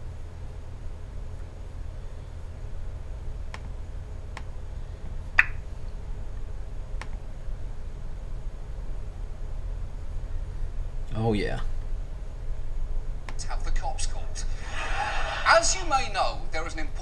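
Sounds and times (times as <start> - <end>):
trackpad clicks: 5.4 - 5.6.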